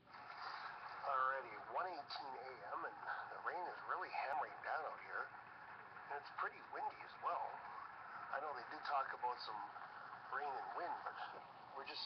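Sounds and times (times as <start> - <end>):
steady hiss: 0.0 - 12.0
man's voice through phone speaker: 0.9 - 5.3, 6.0 - 12.0.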